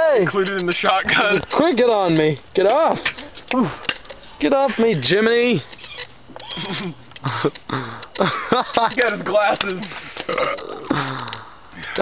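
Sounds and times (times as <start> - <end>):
person belching: 10.3 - 11.4.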